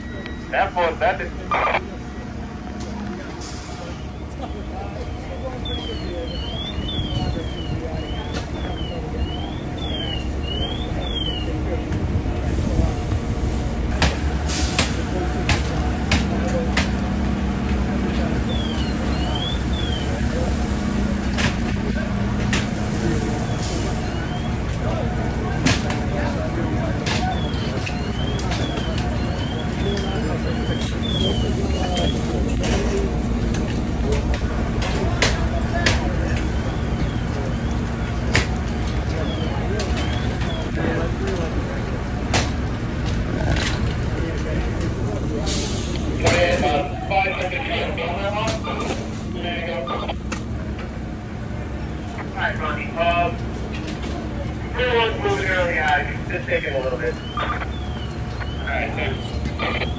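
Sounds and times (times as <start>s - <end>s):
fire engines running: 0.0s - 59.9s.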